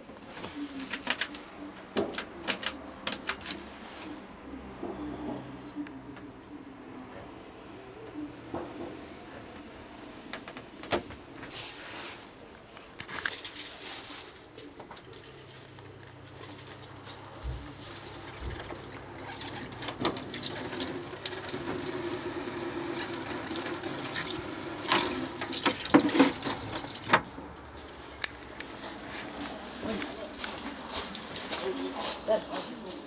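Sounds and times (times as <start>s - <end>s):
shower water into plastic tray: 17.9s - 27.3s.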